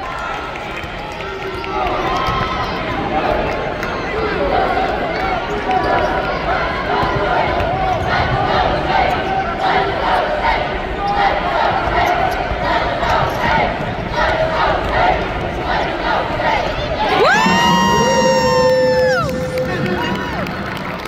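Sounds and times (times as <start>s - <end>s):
crowd talking and calling out: 0.0s - 21.0s.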